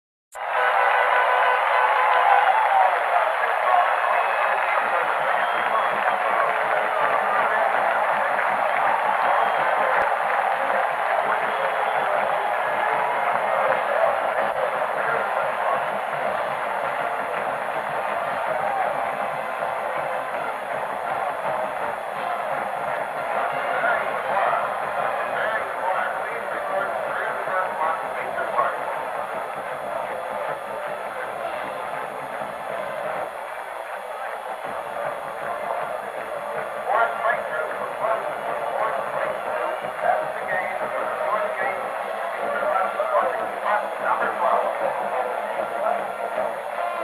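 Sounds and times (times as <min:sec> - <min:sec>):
stadium crowd cheering: 0:00.3 - 0:47.0.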